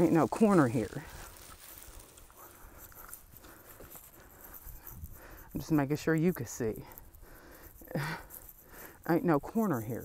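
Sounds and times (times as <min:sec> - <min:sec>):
footsteps on pavement: 0:00.0 - 0:05.3.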